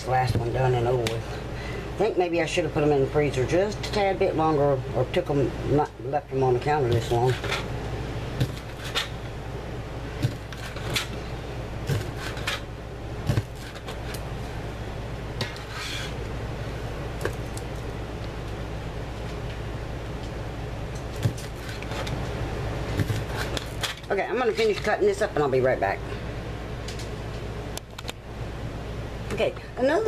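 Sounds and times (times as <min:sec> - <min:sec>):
steady low hum: 0:00.0 - 0:30.0
cleaver chopping on plastic board: 0:10.2 - 0:11.0.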